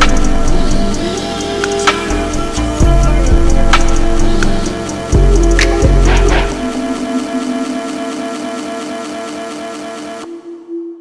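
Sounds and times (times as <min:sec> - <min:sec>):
slowed reverbed hip-hop chords: 0:00.0 - 0:11.0.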